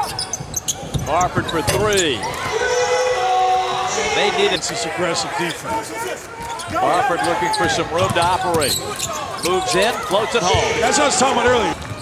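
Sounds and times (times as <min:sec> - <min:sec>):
basketball bouncing on court: 0:07.5 - 0:08.8.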